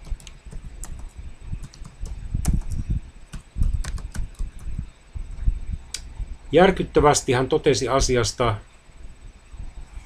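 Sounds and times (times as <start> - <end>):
computer keyboard key clicks: 0.0 - 4.7.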